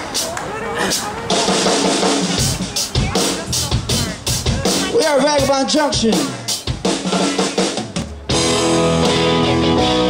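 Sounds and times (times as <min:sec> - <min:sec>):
drum kit playing: 0:00.0 - 0:10.0.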